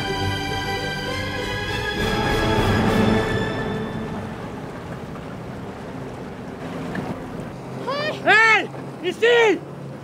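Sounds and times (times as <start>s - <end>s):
sea water noise: 0.0s - 10.0s
wind: 0.0s - 10.0s.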